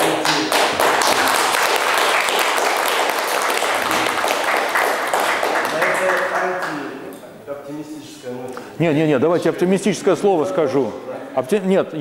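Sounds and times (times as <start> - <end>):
audience applauding: 0.0 - 6.9.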